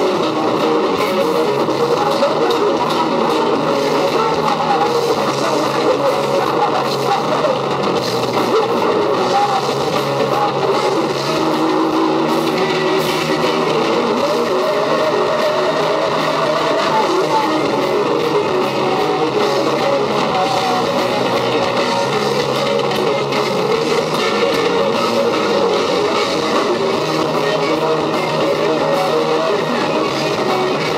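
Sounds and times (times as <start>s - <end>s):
bass guitar: 0.0s - 30.9s
drums: 0.0s - 30.9s
electric guitars: 0.0s - 30.9s.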